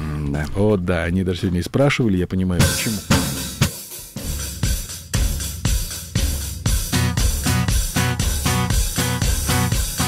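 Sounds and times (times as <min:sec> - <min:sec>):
bass drum and snare beat: 0:02.6 - 0:10.0
hi-hat and cymbals: 0:02.6 - 0:10.0
rock band playing: 0:02.6 - 0:10.0.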